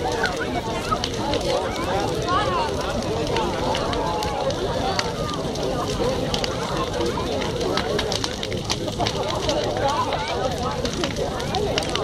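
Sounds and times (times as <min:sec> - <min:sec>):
bonfire crackling and popping: 0:00.0 - 0:12.0
people chatting: 0:00.0 - 0:12.0.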